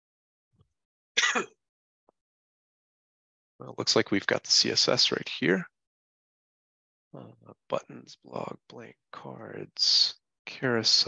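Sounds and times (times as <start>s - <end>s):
person clearing throat: 1.2s - 1.5s.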